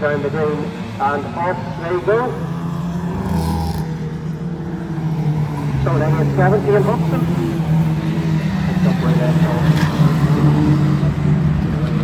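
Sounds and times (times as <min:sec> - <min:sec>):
commentator speaking: 0:00.0 - 0:02.6, 0:05.7 - 0:07.6, 0:08.7 - 0:09.9
race car engines droning: 0:00.0 - 0:12.0.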